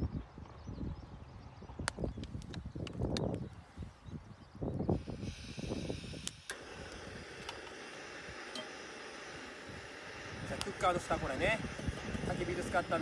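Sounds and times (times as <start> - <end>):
wind buffeting microphone: 0.0 - 13.0
gas stove burner hissing: 4.7 - 13.0.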